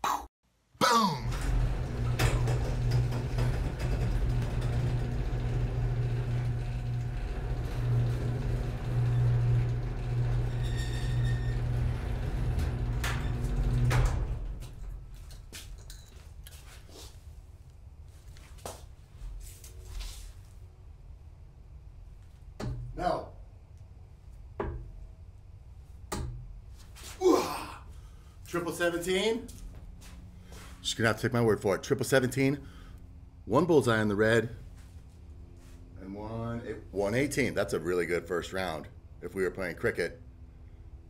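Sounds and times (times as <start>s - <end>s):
low mechanical rumble: 1.3s - 16.0s, 19.0s - 41.0s.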